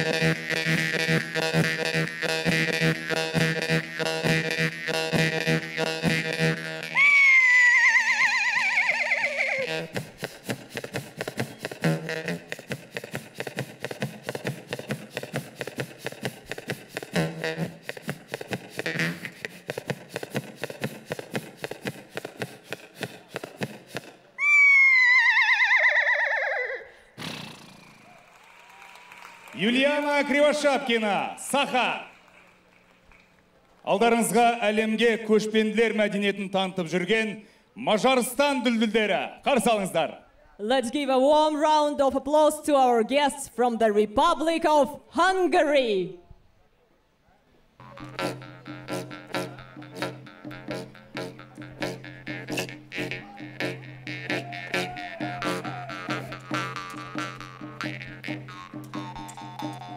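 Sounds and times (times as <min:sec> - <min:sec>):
jaw harp buzzing: 0:00.0 - 0:24.0, 0:47.8 - 0:59.9
wavering falling cry: 0:06.8 - 0:09.7, 0:24.4 - 0:27.0, 0:52.5 - 0:59.9.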